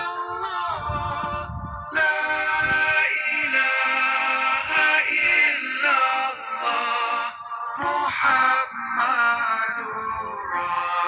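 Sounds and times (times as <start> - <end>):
voice chanting devotional melody: 0.0 - 11.0.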